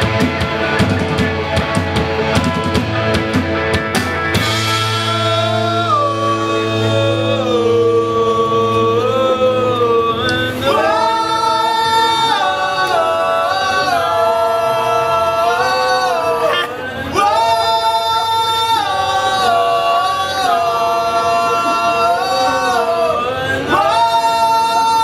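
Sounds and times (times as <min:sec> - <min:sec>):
live rock band playing: 0:00.0 - 0:09.1.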